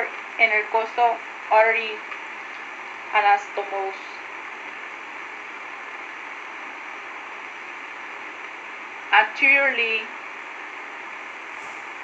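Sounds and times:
steady background hiss: 0:00.0 - 0:12.0.

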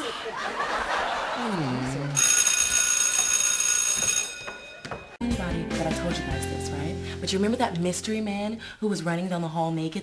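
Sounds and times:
person laughing: 0:00.0 - 0:02.2
school bell ringing: 0:02.2 - 0:05.2.

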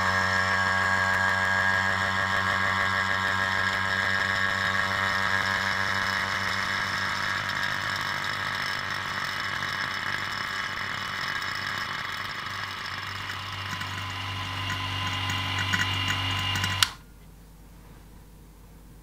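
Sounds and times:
vacuum pump humming: 0:00.0 - 0:17.1.

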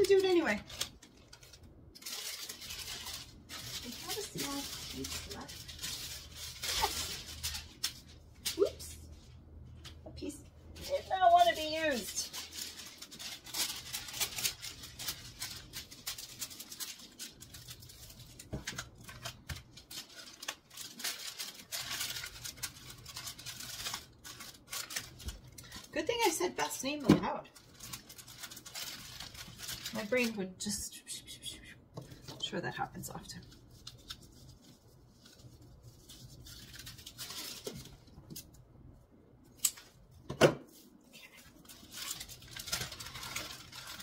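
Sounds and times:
plastic packaging crinkling: 0:00.0 - 0:30.5, 0:32.0 - 0:38.6, 0:39.5 - 0:44.0.

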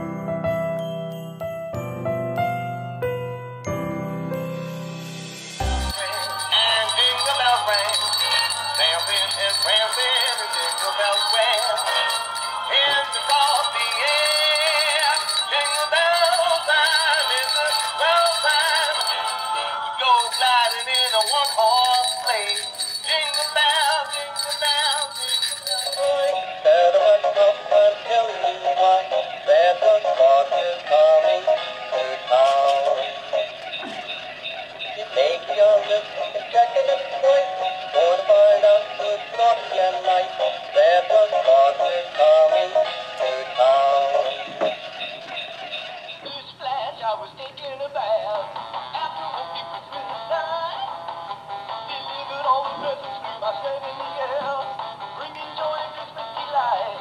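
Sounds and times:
tinny electronic christmas songs: 0:03.6 - 0:46.3.

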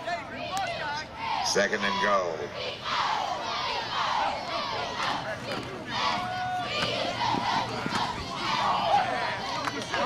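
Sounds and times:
crowd shouting and yelling: 0:00.0 - 0:10.0.

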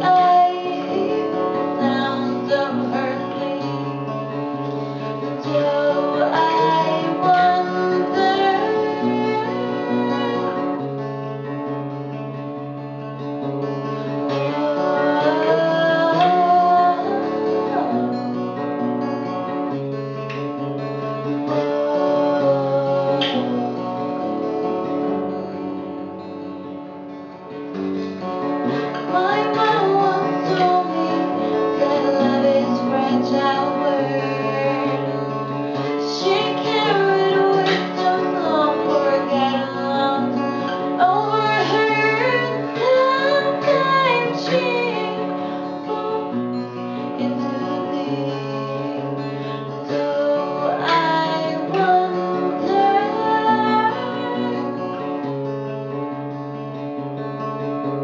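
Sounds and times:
woman singing: 0:00.0 - 0:11.8, 0:13.4 - 0:19.8, 0:20.5 - 0:25.7, 0:28.2 - 0:56.0
acoustic guitar chords: 0:00.0 - 0:58.0.

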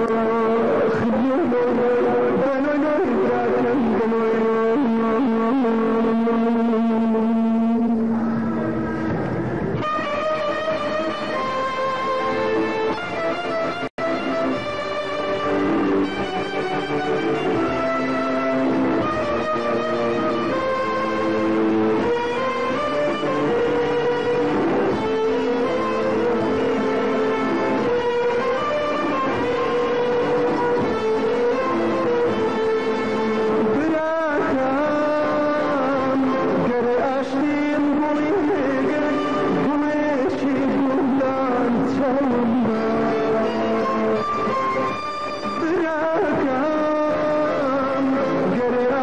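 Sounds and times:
person singing: 0:00.0 - 0:09.1, 0:09.8 - 0:49.0
violins and plucked strings: 0:00.0 - 0:49.0.

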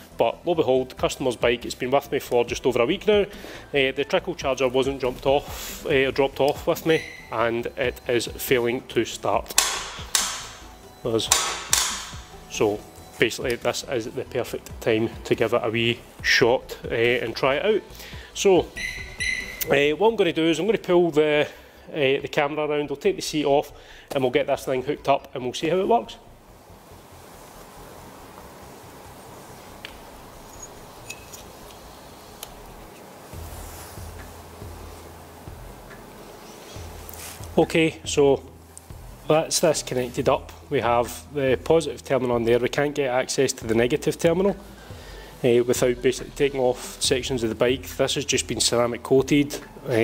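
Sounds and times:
clamps clicking: 0:09.5 - 0:10.6, 0:11.2 - 0:12.2
sharp knocks echoing: 0:09.6 - 0:10.6, 0:11.3 - 0:12.3.

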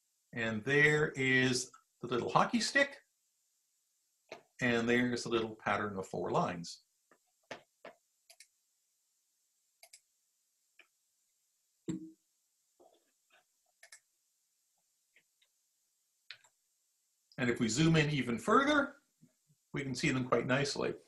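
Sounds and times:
faint clicks and taps: 0:04.2 - 0:04.6, 0:07.0 - 0:08.6, 0:10.7 - 0:11.0, 0:14.8 - 0:15.6.

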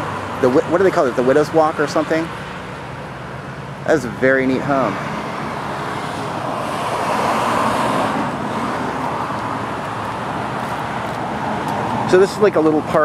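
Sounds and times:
car passing with tyre noise: 0:00.0 - 0:13.0.

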